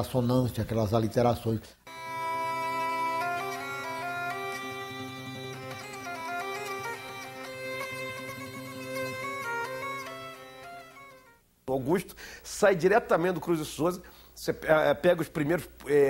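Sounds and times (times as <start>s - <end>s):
reedy wind melody: 1.9s - 11.3s.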